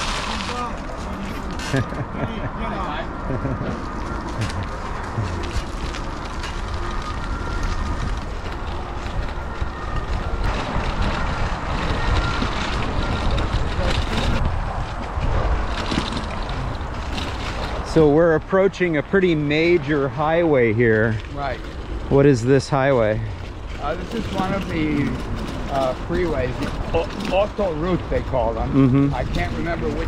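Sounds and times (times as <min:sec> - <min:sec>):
bicycle tyres rumbling over path: 0:00.0 - 0:30.0
wind blowing across microphone: 0:00.0 - 0:30.0.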